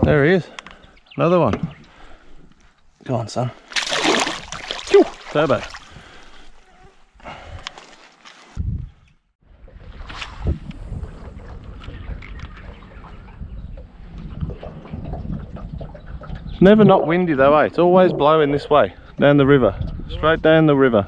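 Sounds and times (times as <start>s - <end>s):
water splashing and dripping: 3.6s - 6.3s
wind rumbling on microphone: 8.5s - 21.0s.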